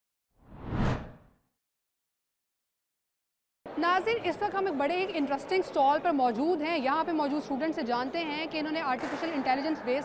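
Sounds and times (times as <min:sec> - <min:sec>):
rushing whoosh: 0:00.4 - 0:01.3.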